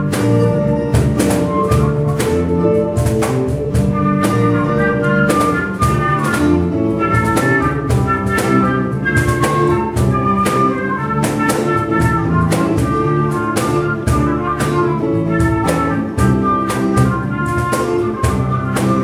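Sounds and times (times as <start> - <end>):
bass notes: 0.0 - 19.0
flute melody: 0.0 - 19.0
hand percussion beat: 0.0 - 19.0.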